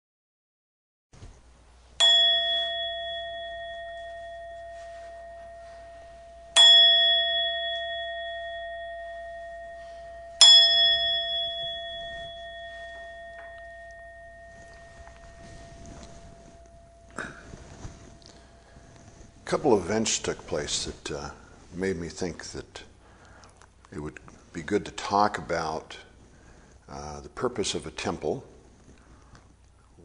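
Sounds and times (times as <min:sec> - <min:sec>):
singing bowl ringing: 0:02.0 - 0:21.8.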